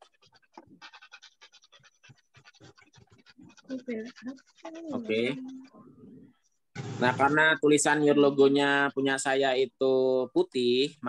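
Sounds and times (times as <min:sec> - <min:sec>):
person's voice: 0:04.7 - 0:05.7.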